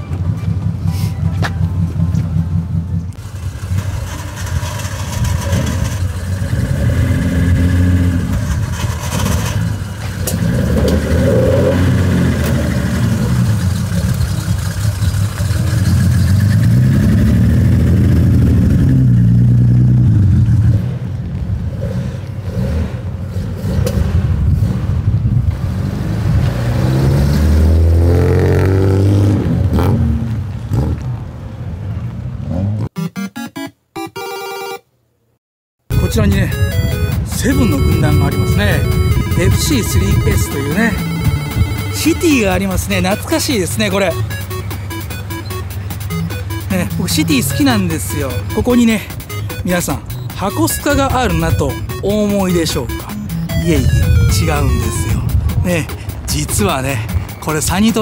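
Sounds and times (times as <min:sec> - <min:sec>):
car engine revving: 0:00.2 - 0:31.2.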